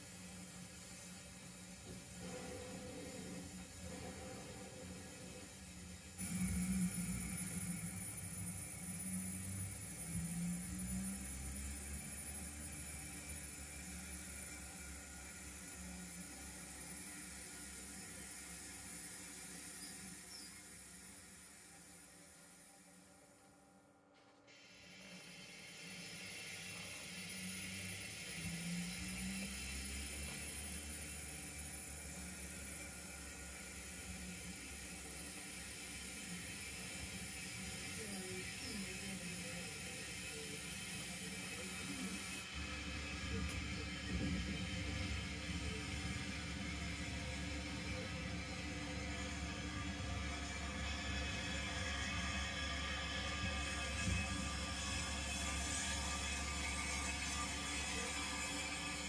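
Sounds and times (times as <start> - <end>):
model train motor hum: 0.0 - 23.1, 24.6 - 59.0.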